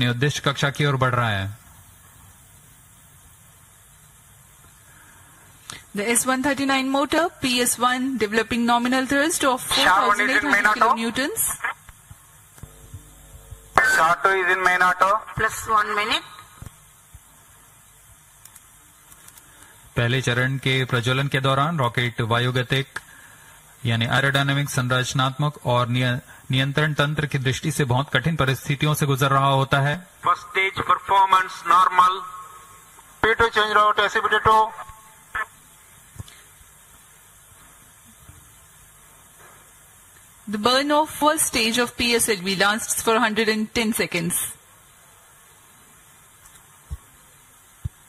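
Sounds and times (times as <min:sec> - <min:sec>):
background hiss: 0:00.0 - 0:48.0
low hum: 0:12.5 - 0:14.3.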